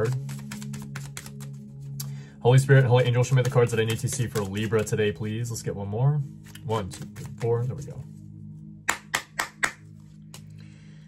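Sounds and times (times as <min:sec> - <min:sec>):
background music: 0:00.0 - 0:11.0
cards snapping on table: 0:00.3 - 0:01.5.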